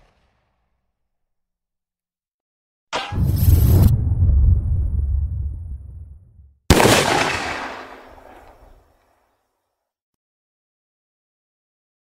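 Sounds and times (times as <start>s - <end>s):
gunshot bang with rumble: 6.7s - 8.0s.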